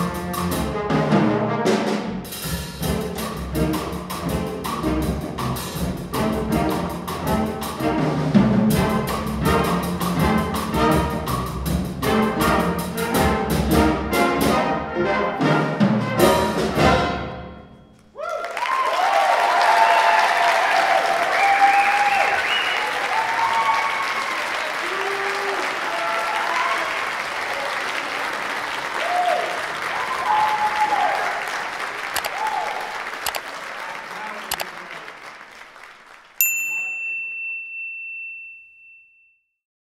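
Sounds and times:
whoops: 18.1 - 27.1, 29.0 - 31.4, 32.3 - 33.0
audience applauding: 18.1 - 36.5.

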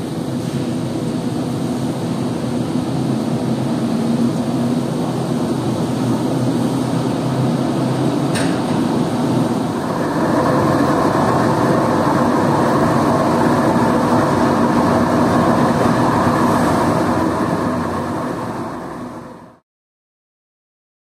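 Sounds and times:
spin dryer running: 3.0 - 19.6.

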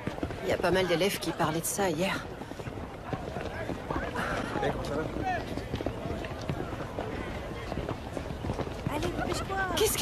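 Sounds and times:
footsteps of people walking: 0.0 - 10.0
indistinct chatter of voices: 0.0 - 10.0.

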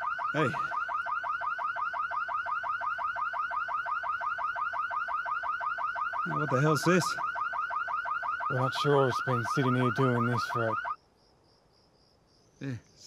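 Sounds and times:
car alarm chirping: 0.0 - 11.0.

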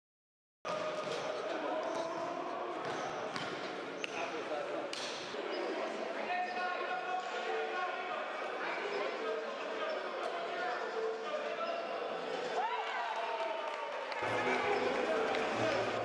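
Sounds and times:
voices of players and spectators: 0.7 - 16.0.

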